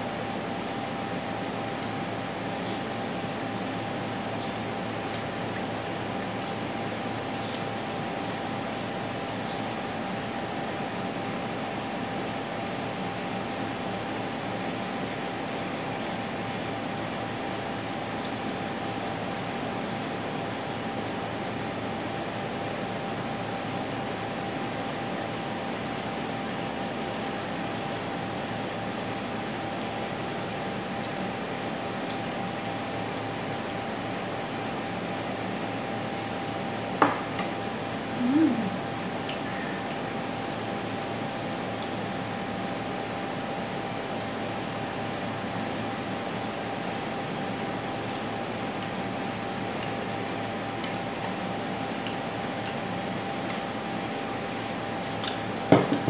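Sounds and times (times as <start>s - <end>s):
fan hissing with faint hum: 0.0s - 56.0s.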